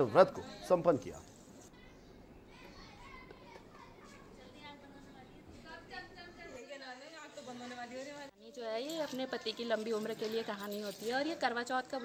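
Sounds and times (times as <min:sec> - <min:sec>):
faint chatter of voices: 0:00.0 - 0:12.0.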